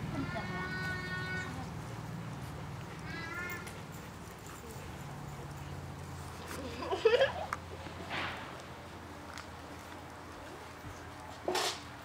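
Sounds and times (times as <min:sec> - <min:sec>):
puppy whining: 0:03.0 - 0:04.0.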